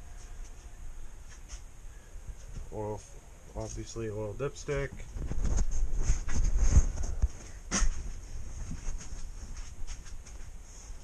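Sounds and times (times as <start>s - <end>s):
rustling: 5.0s - 11.0s.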